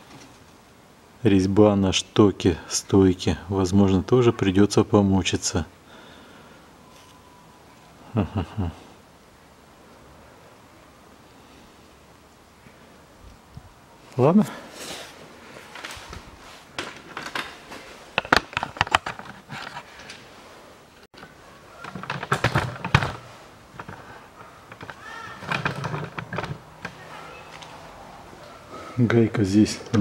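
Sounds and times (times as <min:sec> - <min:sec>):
sharp clicks and knocks: 0:18.2 - 0:20.2, 0:21.2 - 0:27.0.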